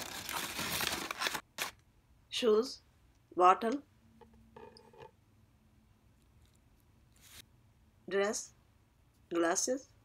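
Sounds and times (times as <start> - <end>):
tissue paper crinkling: 0.0 - 1.8.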